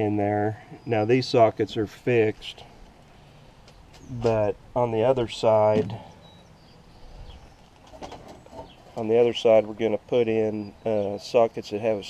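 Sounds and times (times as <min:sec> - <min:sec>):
low outdoor background noise: 0:00.0 - 0:12.0
faint bird calls: 0:05.4 - 0:09.0.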